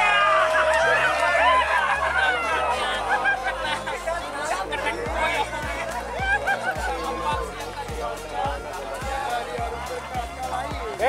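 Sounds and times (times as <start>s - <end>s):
background music melody: 0.0s - 11.0s
steady drum beat: 3.0s - 11.0s.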